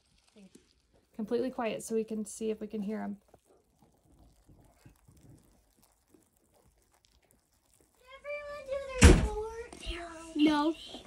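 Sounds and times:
tiny clicks and rustles: 0.0s - 11.0s.

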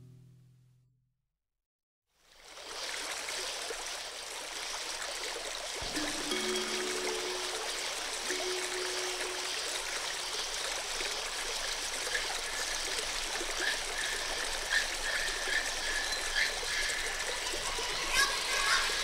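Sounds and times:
water trickling: 2.4s - 19.0s
low held tone: 5.8s - 10.6s.

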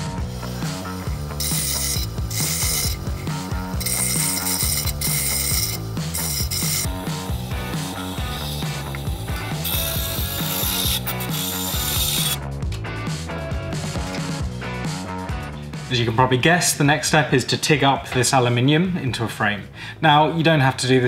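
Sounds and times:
bandsaw cutting metal: 0.0s - 12.4s
background music: 0.0s - 21.0s
hand deburring metal edge: 0.4s - 12.4s.

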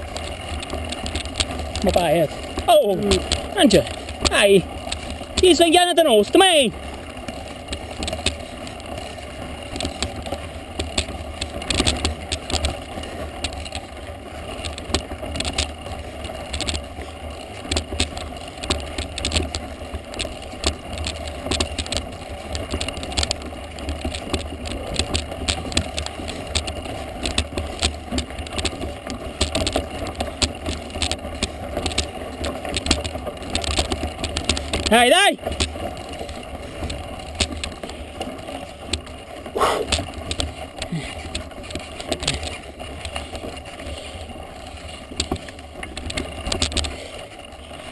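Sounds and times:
bike rattling and clicking: 0.0s - 47.9s.

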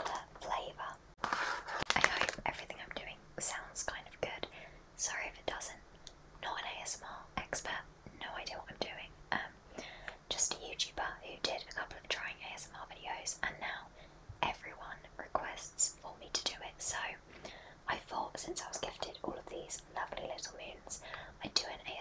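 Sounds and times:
woman whispering: 0.0s - 1.0s, 1.9s - 5.8s, 6.4s - 9.6s, 10.3s - 17.2s, 17.8s - 22.0s.

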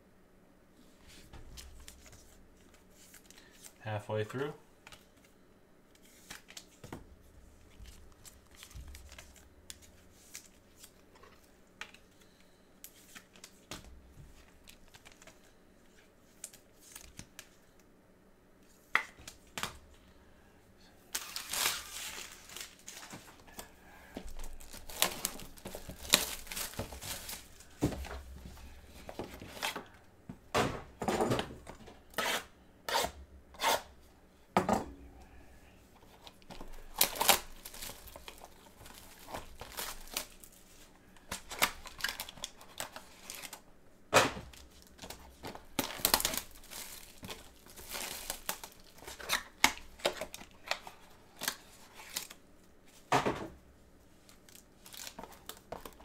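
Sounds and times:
plastic shrink-wrap crackling: 21.1s - 23.1s, 24.3s - 27.7s, 36.6s - 40.6s, 41.4s - 43.6s, 44.5s - 52.4s, 54.2s - 56.0s.

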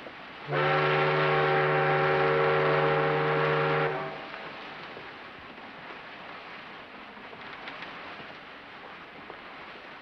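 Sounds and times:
steamship whistle blast: 0.5s - 4.3s.

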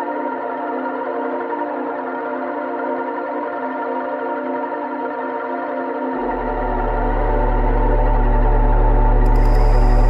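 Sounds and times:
synthesizer drone: 6.2s - 10.0s.

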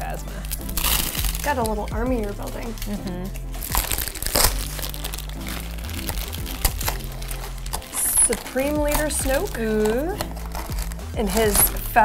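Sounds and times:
packaging crinkling and tearing: 0.0s - 12.0s
soft background music: 0.0s - 12.0s.

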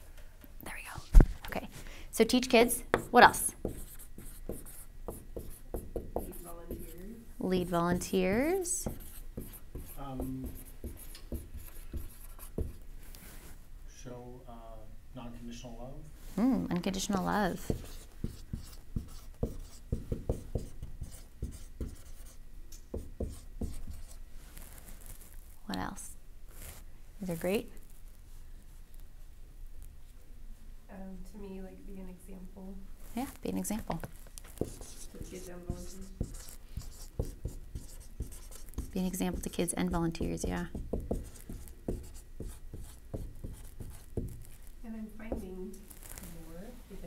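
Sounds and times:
marker writing on a board: 2.9s - 12.8s, 17.5s - 24.2s, 34.5s - 44.6s.

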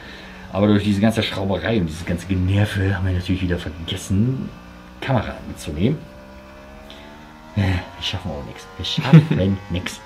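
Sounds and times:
racing motorcycle engine accelerating: 0.0s - 10.0s
man's voice: 0.5s - 6.0s, 7.6s - 10.0s.

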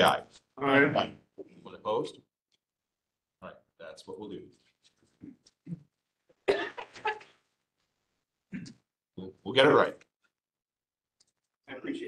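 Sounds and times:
person coughing: 5.7s - 7.2s.

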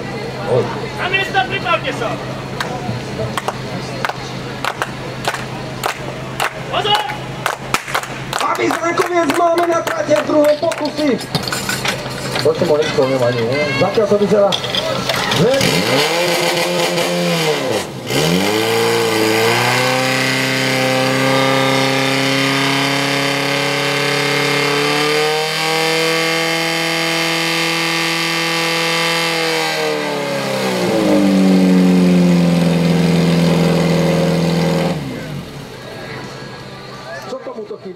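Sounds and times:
fire pump engine running: 0.0s - 16.2s, 30.0s - 37.9s.

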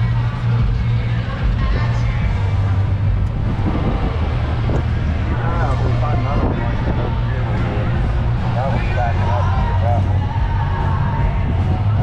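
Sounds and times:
golf cart humming: 0.0s - 12.0s
voices: 0.0s - 12.0s.

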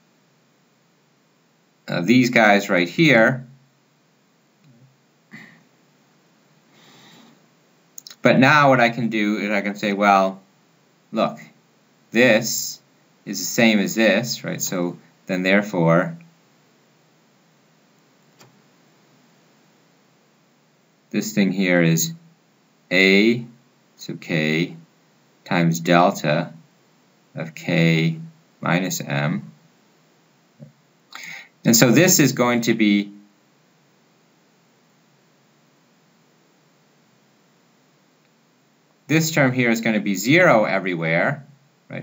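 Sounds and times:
faint room hiss: 0.0s - 42.0s
person saying uh: 31.2s - 33.0s.

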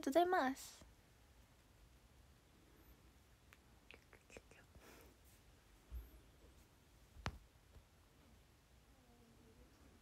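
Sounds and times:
woman whispering: 3.8s - 5.0s.

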